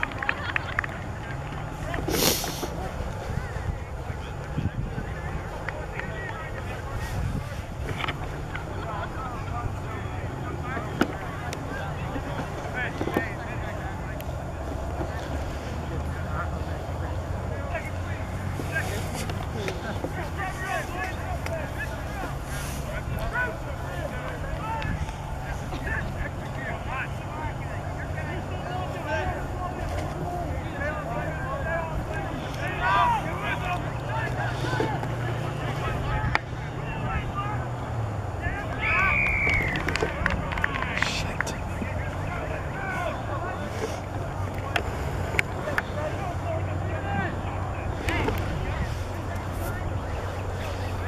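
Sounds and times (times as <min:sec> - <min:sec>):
distant shouts and calls: 0:00.0 - 0:51.0
wind buffeting microphone: 0:02.1 - 0:10.3.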